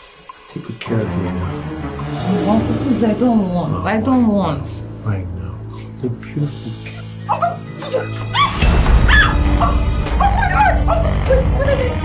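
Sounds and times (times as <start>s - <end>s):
background music with deep bass: 0.0s - 12.0s.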